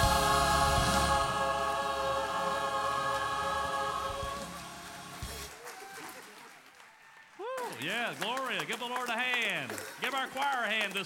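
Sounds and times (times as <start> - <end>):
choir holding a chord: 0.0 - 5.4.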